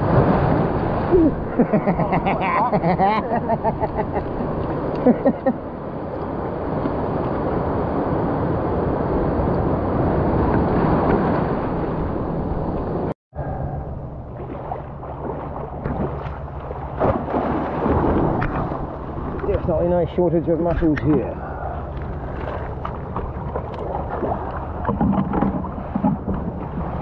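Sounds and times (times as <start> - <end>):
surf washing over rocks: 0.0 - 13.1
small splashes and knocks: 14.4 - 19.7, 21.9 - 27.0.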